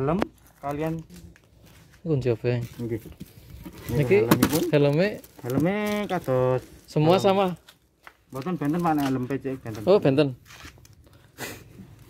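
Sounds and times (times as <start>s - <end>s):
man speaking: 3.8s - 7.6s, 8.3s - 10.4s.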